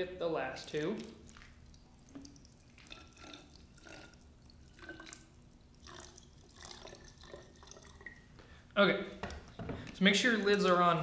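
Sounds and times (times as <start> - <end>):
water dripping: 0.5 - 8.3
water pouring into plastic bottle: 0.7 - 8.2.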